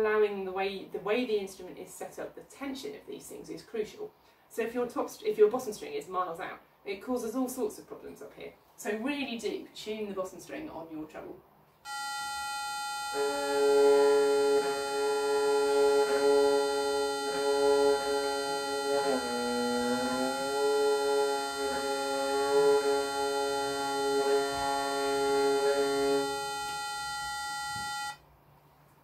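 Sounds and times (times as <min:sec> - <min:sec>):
bowed string being tuned: 0:11.9 - 0:28.2
steady reference tone: 0:11.9 - 0:28.2.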